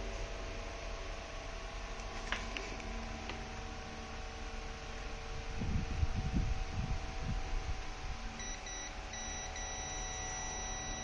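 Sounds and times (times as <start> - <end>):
low mains hum: 0.0 - 11.0
multimeter continuity beep: 8.4 - 11.0.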